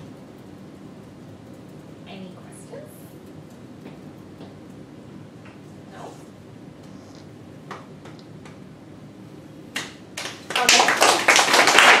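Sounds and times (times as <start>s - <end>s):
audience applauding: 10.2s - 12.0s.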